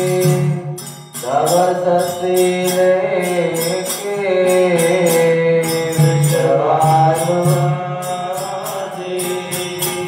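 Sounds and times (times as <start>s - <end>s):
percussion beating: 0.0s - 10.0s
person chanting: 1.2s - 10.0s.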